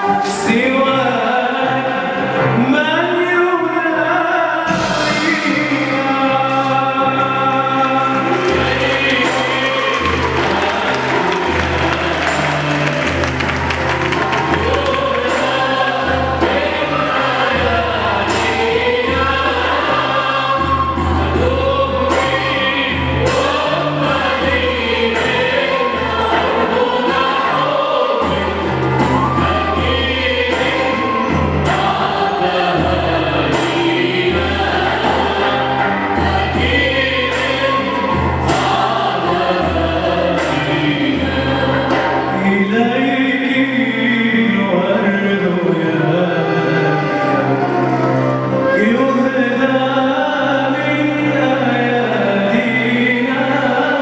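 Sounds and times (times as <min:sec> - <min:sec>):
choir singing: 0:00.0 - 0:54.0
keyboard accompaniment: 0:00.0 - 0:54.0.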